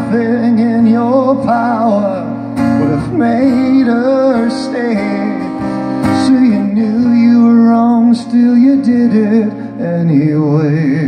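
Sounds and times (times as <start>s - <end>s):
man singing: 0.0s - 11.0s
strummed acoustic guitar: 0.0s - 11.0s.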